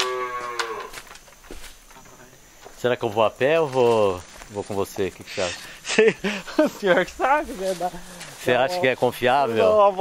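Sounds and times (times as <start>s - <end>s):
cow mooing: 0.0s - 1.0s.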